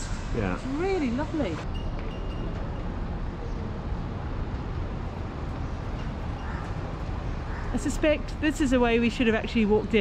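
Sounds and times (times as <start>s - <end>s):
street background rumble: 0.0s - 10.0s.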